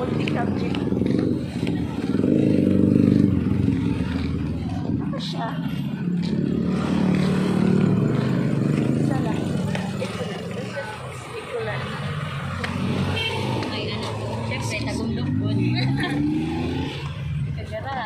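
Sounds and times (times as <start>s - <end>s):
engine idling and revving: 0.0s - 18.0s.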